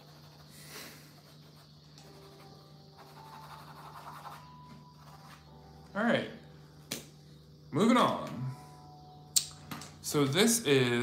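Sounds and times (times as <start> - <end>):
pen nib scratching paper: 0.0 - 0.5, 1.1 - 5.4
faint background music: 0.0 - 11.0
steady low hum: 0.0 - 11.0.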